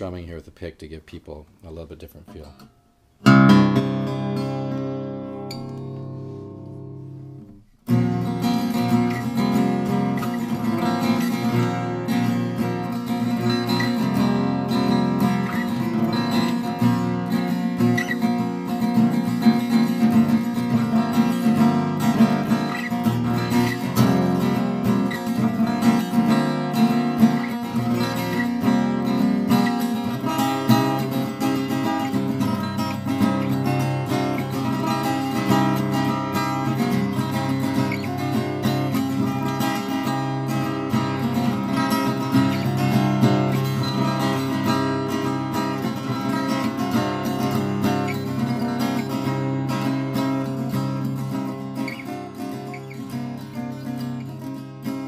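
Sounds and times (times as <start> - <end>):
acoustic guitar strummed with pick: 2.3 - 55.0.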